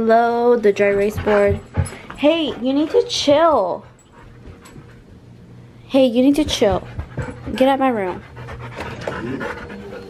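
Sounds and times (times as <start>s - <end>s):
dog panting: 0.7s - 5.1s, 6.4s - 10.0s.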